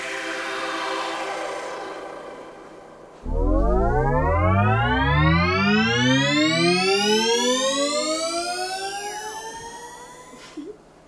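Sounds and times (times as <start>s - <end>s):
faint falling sweep: 3.2s - 8.2s
rising synthesized spell tones: 3.2s - 10.3s.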